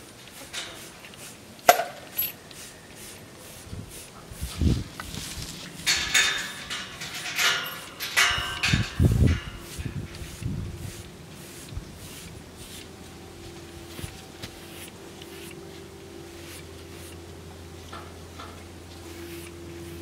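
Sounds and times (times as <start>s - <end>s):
rubber comb scrubbing horse coat: 0.0s - 18.0s, 18.9s - 20.0s.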